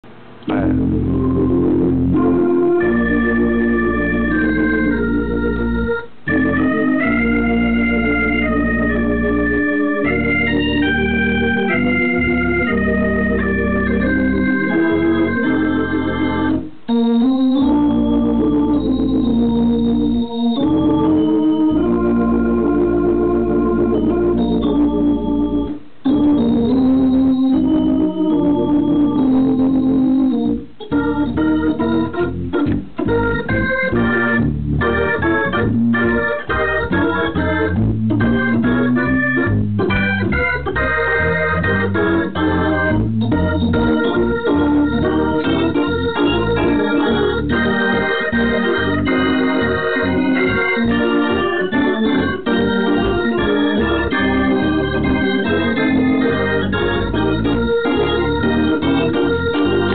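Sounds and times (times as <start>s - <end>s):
organ playing gospel chords: 0.0s - 59.9s.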